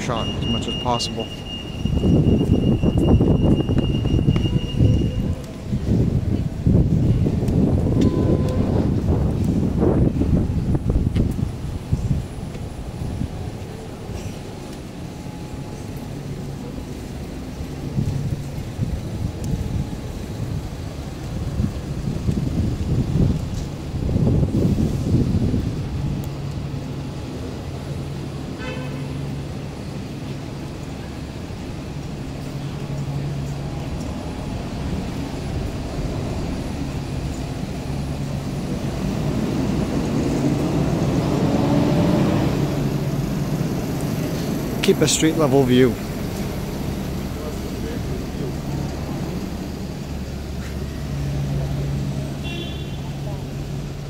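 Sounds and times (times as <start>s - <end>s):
bus engines humming: 0.0s - 54.0s
vehicles passing: 0.0s - 54.0s.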